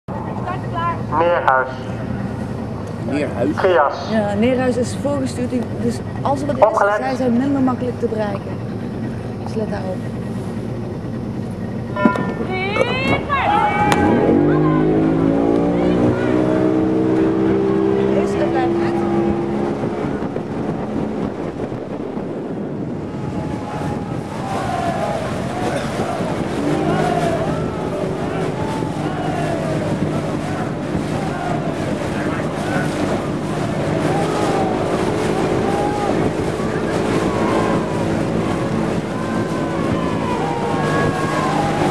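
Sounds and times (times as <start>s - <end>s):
water noise: 0.0s - 41.9s
motorboat engine idling: 0.1s - 41.9s
wind noise: 1.9s - 41.9s.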